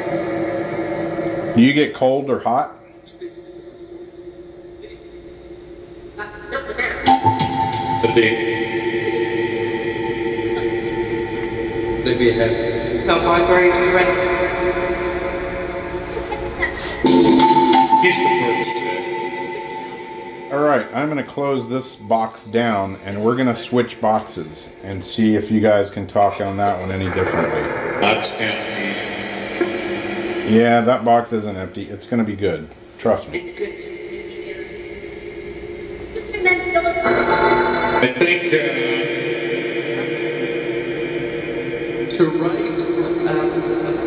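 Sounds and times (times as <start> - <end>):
drone of layered tones: 0.0 - 1.8, 6.1 - 31.7, 33.3 - 44.0
thin high whine: 0.0 - 44.0
static: 9.0 - 34.8
rising blip: 26.6 - 31.2.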